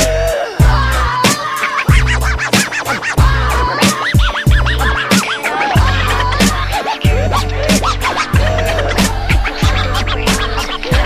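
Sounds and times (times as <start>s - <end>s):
hip hop beat: 0.0s - 11.0s
vinyl record scratching: 0.0s - 11.0s.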